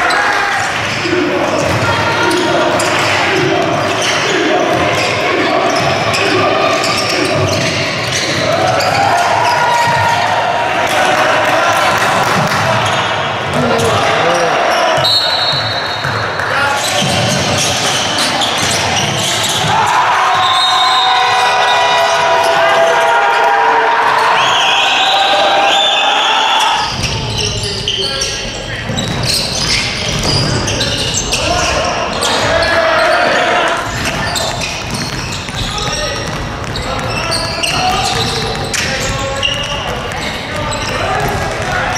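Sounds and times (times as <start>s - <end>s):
players' voices: 0.0s - 41.9s
basketball dribbling and bouncing: 0.6s - 10.3s, 11.8s - 20.5s, 26.8s - 32.6s, 33.8s - 41.9s
short high shoe squeaks: 26.6s - 33.2s, 33.9s - 41.2s.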